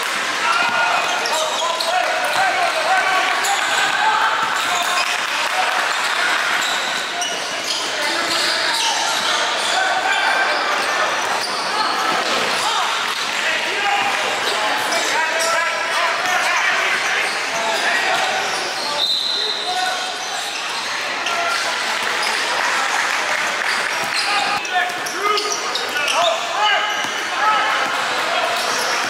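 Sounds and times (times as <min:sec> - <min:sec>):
people talking and calling out: 0:00.0 - 0:29.0
sneakers squeaking: 0:00.0 - 0:29.0.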